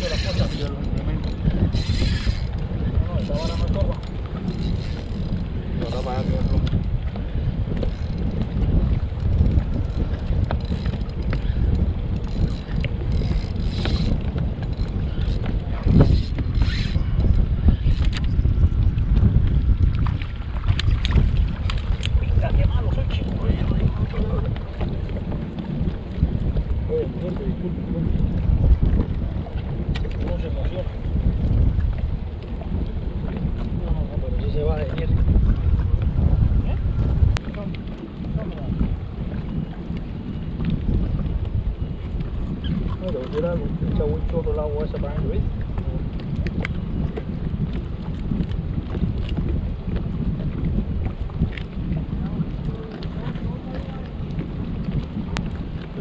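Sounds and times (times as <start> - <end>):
wind buffeting microphone: 0.0 - 56.0.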